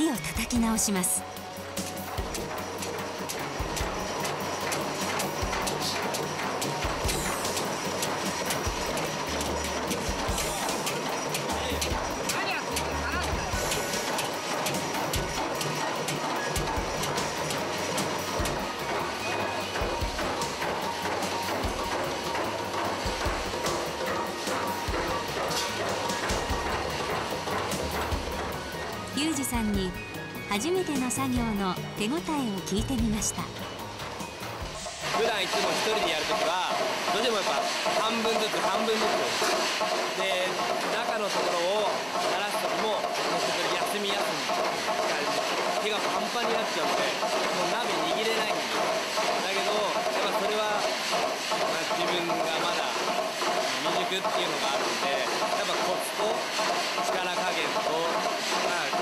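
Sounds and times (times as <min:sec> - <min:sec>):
machine hammer striking iron wok: 0:00.1 - 0:59.0.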